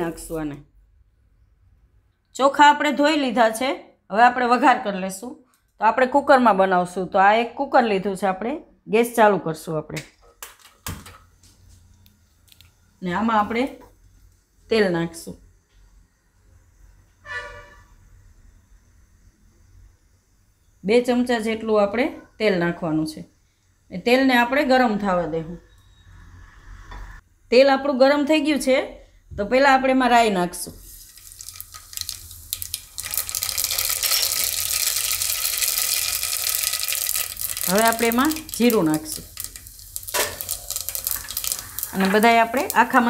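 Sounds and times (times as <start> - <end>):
short horn toot: 17.2 - 18.0
seeds sizzling in hot oil: 30.7 - 43.0.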